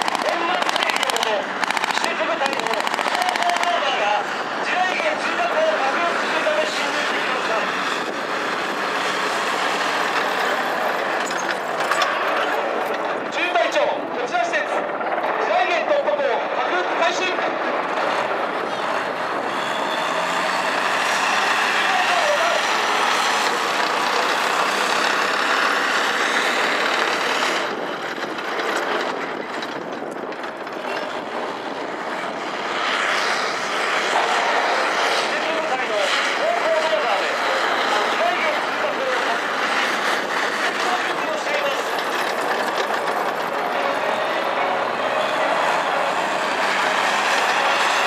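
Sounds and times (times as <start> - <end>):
distant voice: 0.0 - 27.7, 32.2 - 48.0
bulldozer engine running: 0.0 - 48.0.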